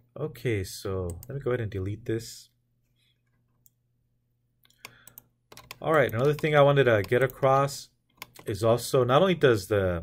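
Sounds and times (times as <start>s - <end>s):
computer key and mouse clicks: 4.6s - 8.6s.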